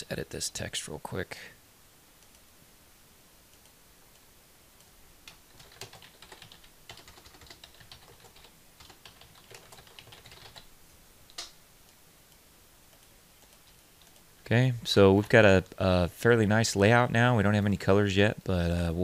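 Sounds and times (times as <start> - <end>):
typing on computer keyboard: 5.3 - 10.7, 12.9 - 14.2.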